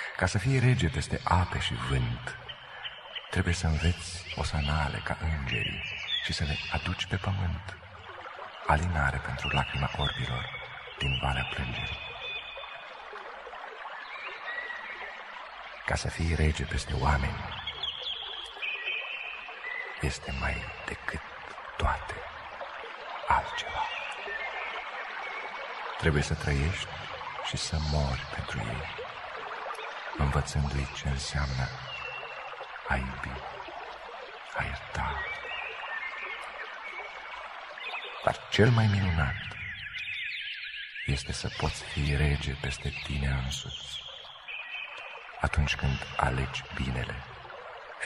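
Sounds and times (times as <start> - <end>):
running water rushing: 0.0 - 48.0.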